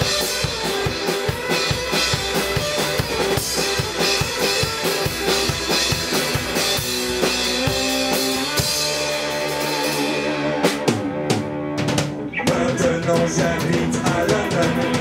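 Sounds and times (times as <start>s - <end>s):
drum kit beat: 0.0s - 15.0s
electric guitar lead: 0.0s - 15.0s
rockabilly band playing live: 0.0s - 15.0s.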